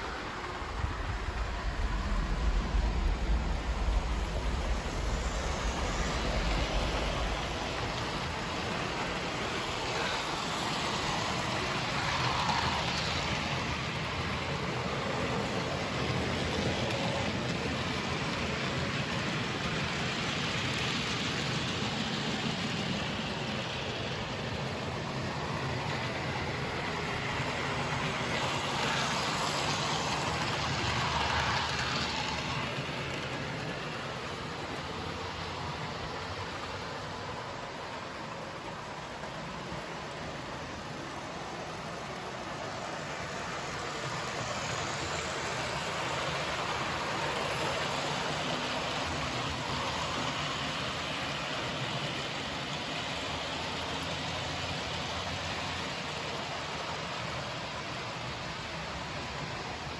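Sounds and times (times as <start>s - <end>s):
model trains whirring on track: 0.0s - 59.9s.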